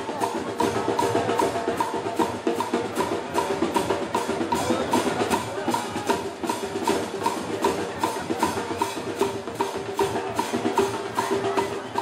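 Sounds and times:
marching drum band: 0:00.0 - 0:12.0.

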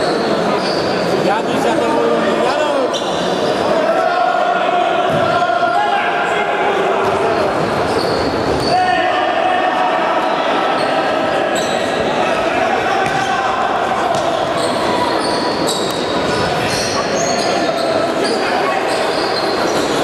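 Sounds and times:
players shouting: 0:03.5 - 0:20.0
shoes squeaking on floor: 0:07.8 - 0:08.8, 0:10.8 - 0:12.0, 0:14.1 - 0:20.0.

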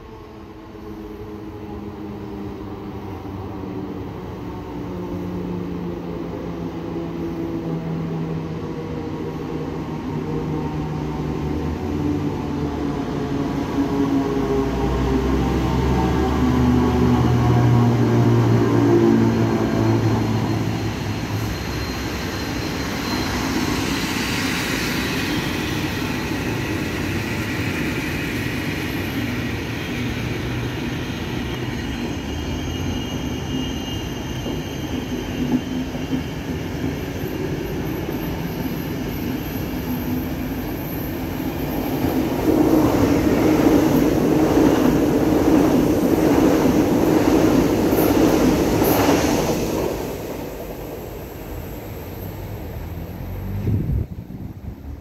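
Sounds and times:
train rumbling over rails: 0:00.0 - 0:55.0.

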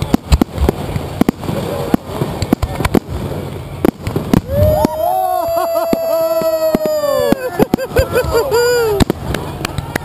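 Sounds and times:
firework bangs: 0:00.0 - 0:10.0
firework crackling: 0:00.0 - 0:10.0.

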